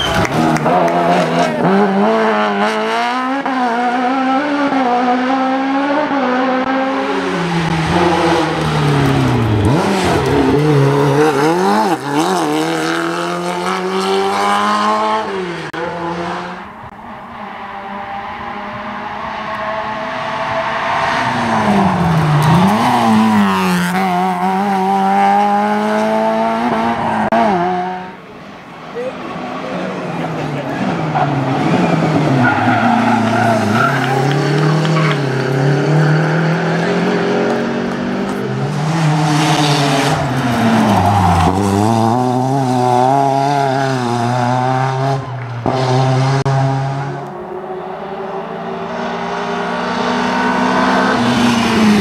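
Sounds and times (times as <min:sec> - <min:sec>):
race car engines at full throttle: 0:00.0 - 0:52.0.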